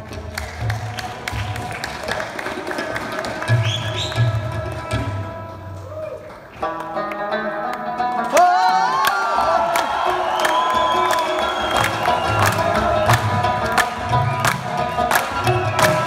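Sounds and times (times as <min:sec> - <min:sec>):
tabla drum strokes: 0:00.0 - 0:05.8, 0:11.4 - 0:16.0
audience whooping and cheering: 0:05.8 - 0:06.5, 0:08.2 - 0:16.0.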